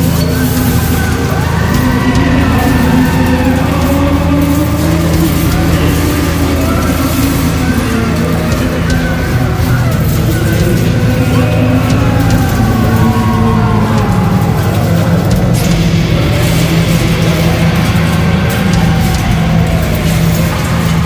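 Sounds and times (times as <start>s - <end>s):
distorted guitars and bass: 0.0s - 21.0s.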